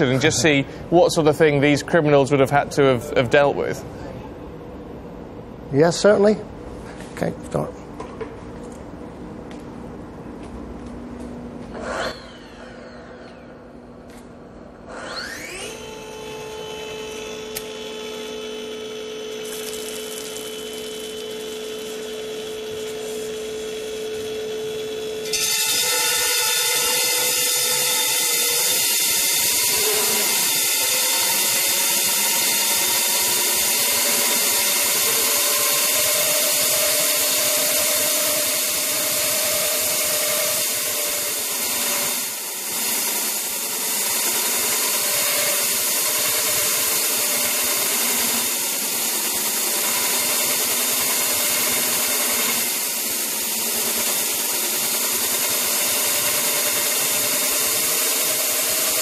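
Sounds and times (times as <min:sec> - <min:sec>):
drill motor whine: 0:11.8 - 0:14.0, 0:14.8 - 0:59.0
concrete drill grinding: 0:14.9 - 0:59.0.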